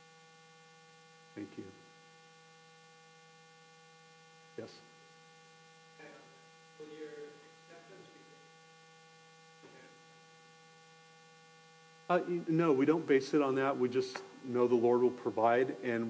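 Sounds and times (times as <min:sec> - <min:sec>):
electrical mains hum: 0:00.0 - 0:16.0.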